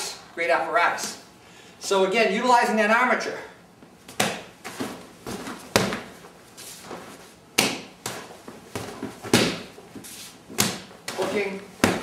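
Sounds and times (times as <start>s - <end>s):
hand strikes on punching bag: 4.1s - 4.5s, 7.6s - 9.7s, 11.8s - 12.0s.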